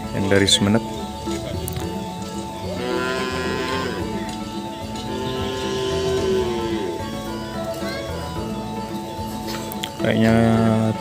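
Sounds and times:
background music: 0.0s - 11.0s
cow mooing: 2.7s - 4.3s, 5.1s - 7.4s.

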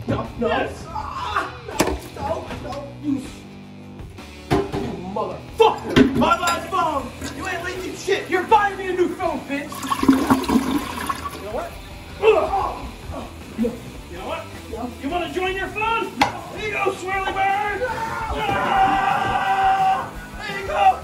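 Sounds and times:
background music: 0.0s - 21.0s
men's raised voices: 5.3s - 9.8s, 11.5s - 21.0s
toilet flushing: 7.0s - 7.9s, 9.7s - 11.7s.

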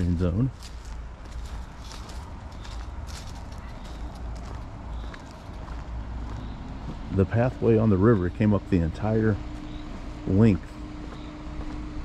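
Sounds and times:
footsteps on paved path: 0.0s - 12.0s
low steady rumble: 0.0s - 12.0s.

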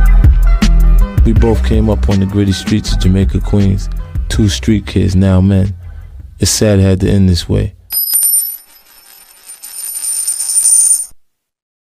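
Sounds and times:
high-pitched metallic jingling: 7.9s - 11.2s.

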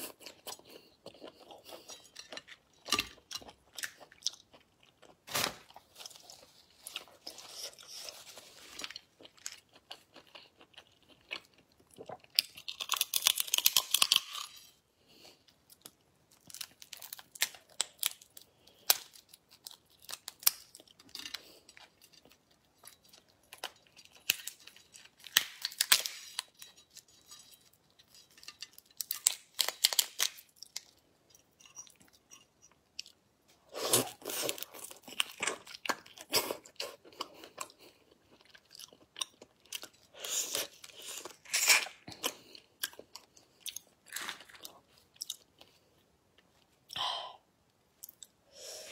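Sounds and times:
shells cracking and peeling: 12.6s - 14.4s, 16.3s - 21.5s, 24.1s - 26.4s, 28.8s - 30.9s.

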